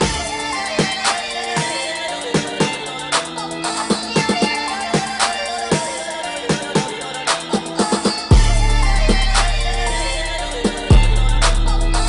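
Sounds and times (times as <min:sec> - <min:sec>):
instrumental hip hop beat: 0:00.0 - 0:12.0.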